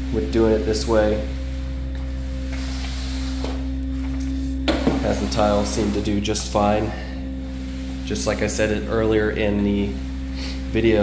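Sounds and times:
machine hum with steady tone: 0.0s - 11.0s.

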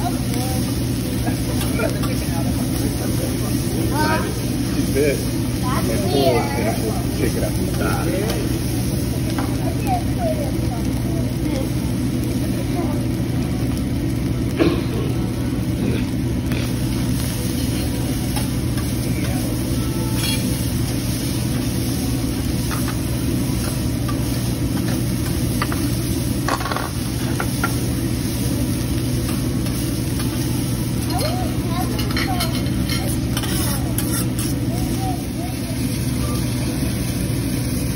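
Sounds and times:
rice sizzling on griddle: 0.0s - 37.9s
metal spatula scraping: 20.1s - 20.5s, 32.0s - 34.6s.

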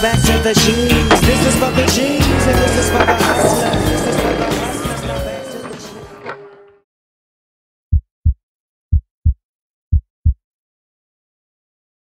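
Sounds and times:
heartbeat thumps: 7.9s - 10.4s.

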